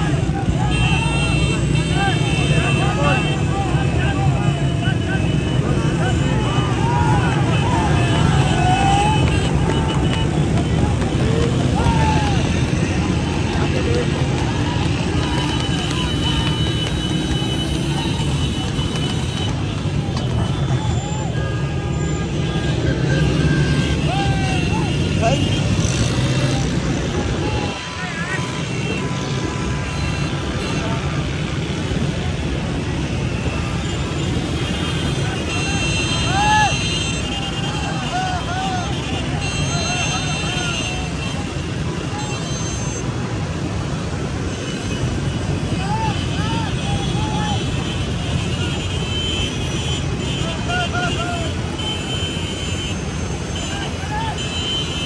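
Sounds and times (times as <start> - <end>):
men shouting: 0.0 - 16.6, 23.0 - 29.1, 35.4 - 36.9, 37.6 - 41.2, 50.4 - 51.7
motorcycle engines: 0.0 - 55.0.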